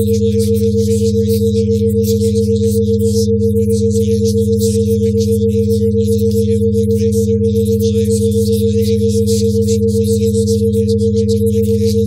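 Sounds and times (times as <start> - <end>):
rapidly pulsing mid tone: 0.0 - 12.0
steady low hums: 0.0 - 12.0.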